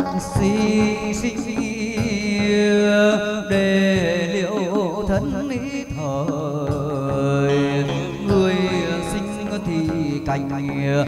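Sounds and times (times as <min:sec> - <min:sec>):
instrumental accompaniment: 0:00.0 - 0:11.0
person singing wavering melody: 0:00.0 - 0:11.0.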